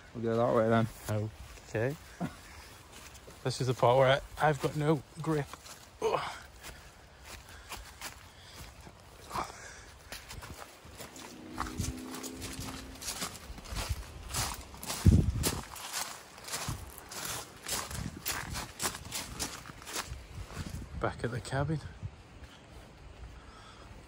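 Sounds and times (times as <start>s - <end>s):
footsteps on leaves and twigs: 0.5s - 20.9s.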